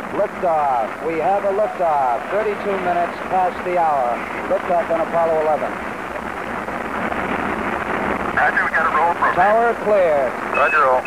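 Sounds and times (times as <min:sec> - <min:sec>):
rocket engines roaring: 0:00.0 - 0:11.0.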